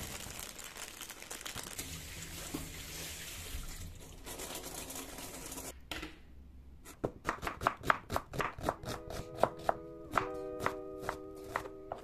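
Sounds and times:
soft background music: 8.8s - 12.0s.

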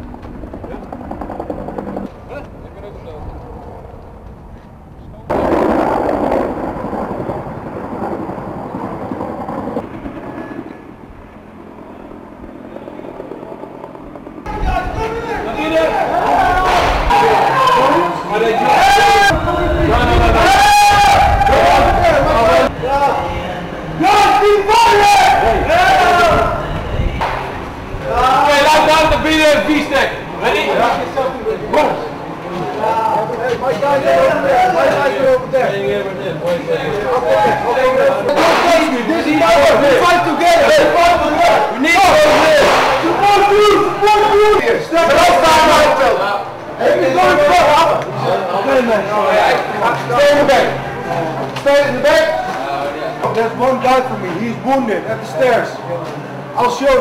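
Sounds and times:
indistinct low voices: 0.0s - 9.8s, 10.5s - 57.0s
outdoor background noise: 0.0s - 57.0s
loud burst of noise: 5.3s - 11.5s, 16.1s - 18.0s, 38.2s - 44.5s.

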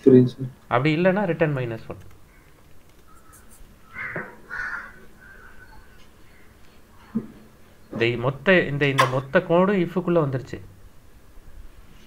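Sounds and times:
harsh bird calls: 2.2s - 8.2s.

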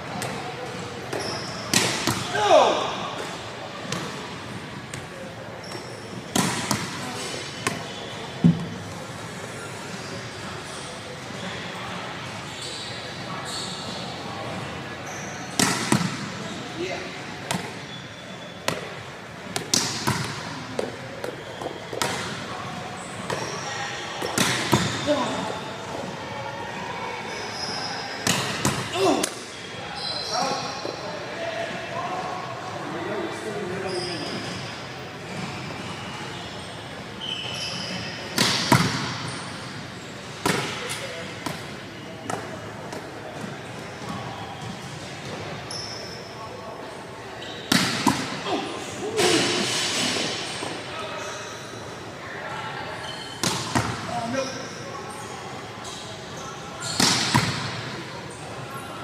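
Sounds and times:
volleyballs smacking on gym floor: 19.5s - 22.3s.

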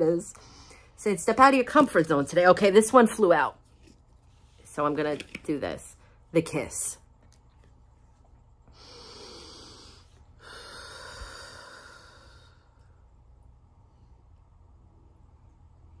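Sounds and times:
person breathing deeply: 8.7s - 13.0s.

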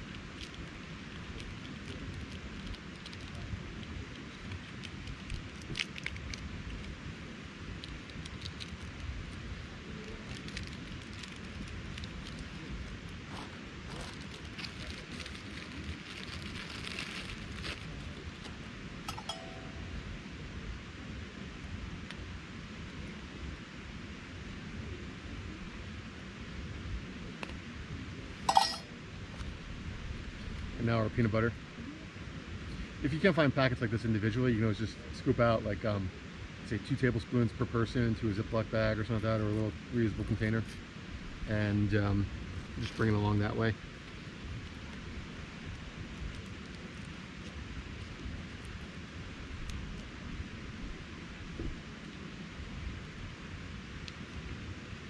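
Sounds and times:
food packet crinkling: 13.9s - 18.2s.

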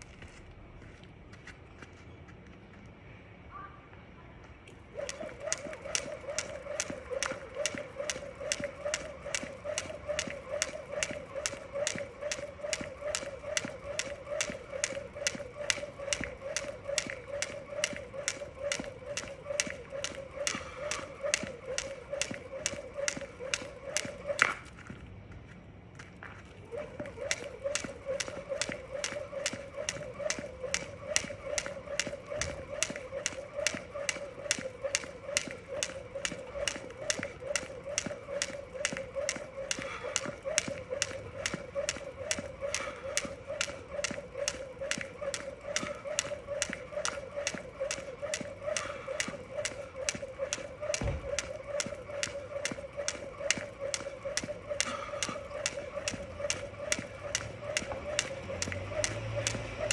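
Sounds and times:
steady hum: 4.7s - 59.9s
jump rope slapping ground: 4.9s - 25.0s, 26.2s - 59.9s.

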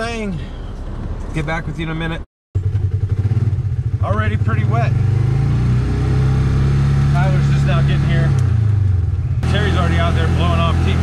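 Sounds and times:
utility vehicle engine revving: 2.6s - 11.0s.

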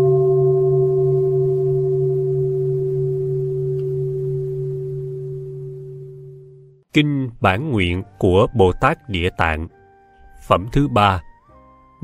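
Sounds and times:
bowl bell ringing: 0.0s - 6.8s.

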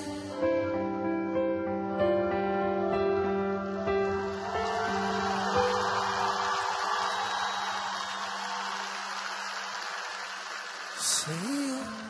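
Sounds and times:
audience applauding: 4.0s - 12.0s.

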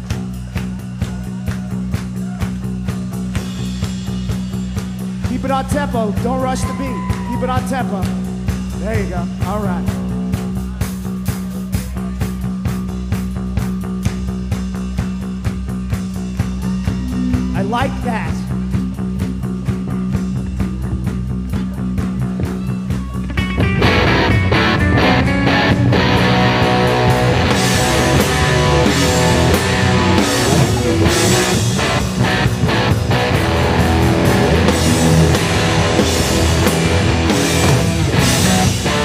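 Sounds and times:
bass guitar: 0.0s - 39.0s
drum kit: 0.0s - 39.0s
electric guitars: 14.9s - 39.0s.

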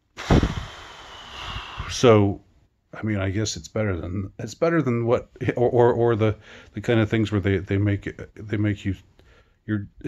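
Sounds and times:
man sighing: 0.2s - 2.1s.

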